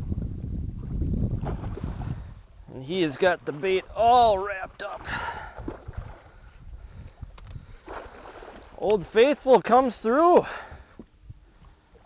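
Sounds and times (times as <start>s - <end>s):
wind rumble on microphone: 0.0s - 9.2s, 10.5s - 12.0s
faint sharp clicks: 7.3s - 7.6s.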